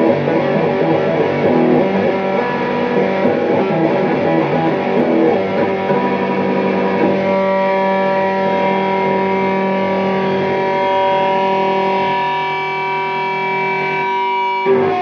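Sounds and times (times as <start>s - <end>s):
distorted electric guitar: 0.0s - 15.0s.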